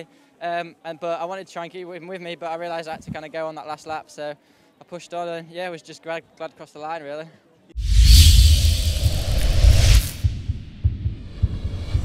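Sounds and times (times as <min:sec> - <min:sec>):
deep pulsing bass beat: 0:07.8 - 0:12.0
whoosh: 0:07.8 - 0:12.0.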